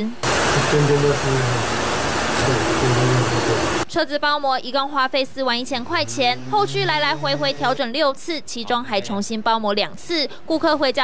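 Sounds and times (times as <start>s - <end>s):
man talking: 0.5s - 1.8s, 2.4s - 3.8s, 6.1s - 7.9s.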